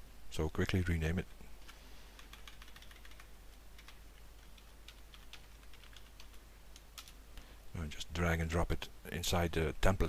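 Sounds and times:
keyboard typing clicks: 0:02.2 - 0:07.2.

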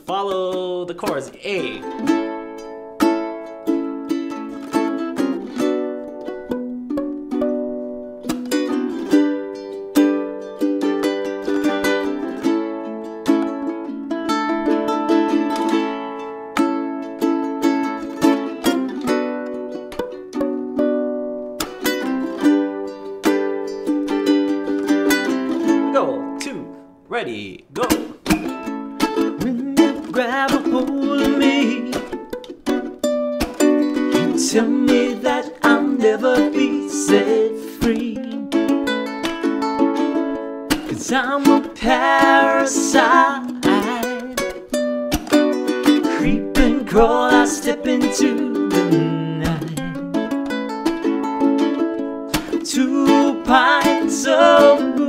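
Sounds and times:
ukulele strumming: 0:00.0 - 0:55.0.

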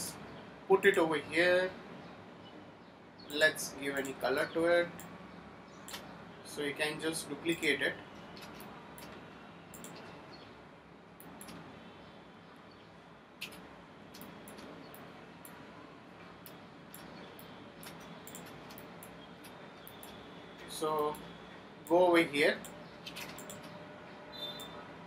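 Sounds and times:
computer mouse clicking: 0:05.9 - 0:06.1, 0:08.4 - 0:10.1, 0:11.2 - 0:11.6, 0:13.4 - 0:15.6, 0:16.4 - 0:20.2, 0:22.6 - 0:23.8.

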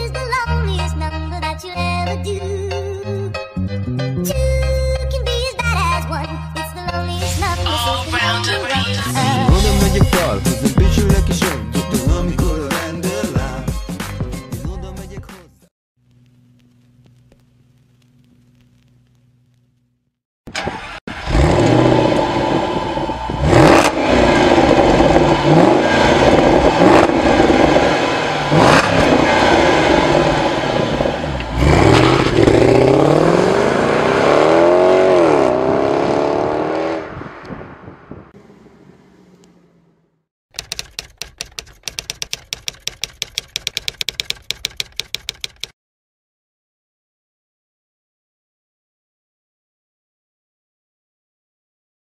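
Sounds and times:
fast run of sharp clicks: 0:16.0 - 0:19.9, 0:40.5 - 0:45.8
car engine revving and accelerating: 0:20.8 - 0:37.5.

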